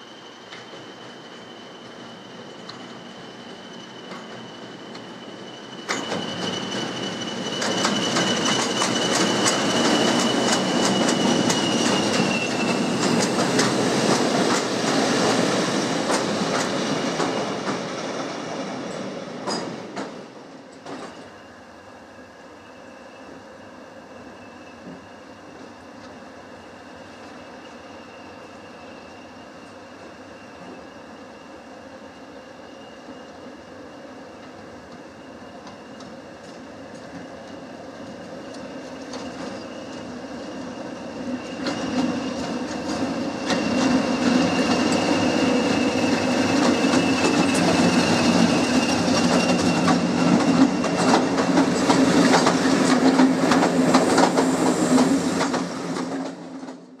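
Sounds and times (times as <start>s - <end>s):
train engines passing: 0.0s - 22.6s, 23.2s - 57.0s.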